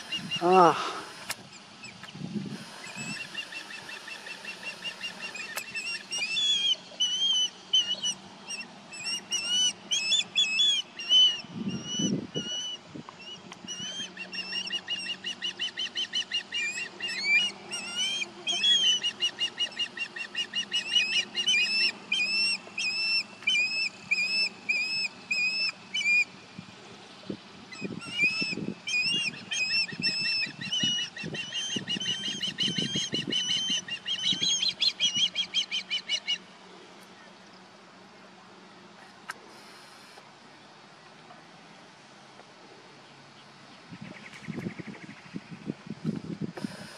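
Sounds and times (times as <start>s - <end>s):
osprey high whistled chirps: 2.8s - 26.3s, 27.7s - 36.4s.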